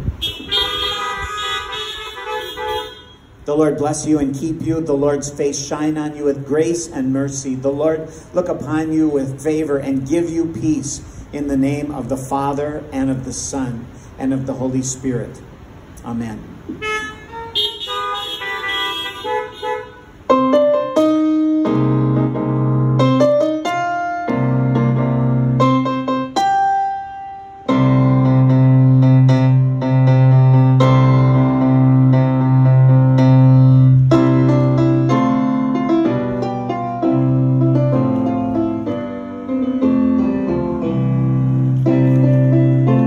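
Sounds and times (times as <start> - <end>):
car horns honking: 0.1 - 3.4, 16.7 - 20.3.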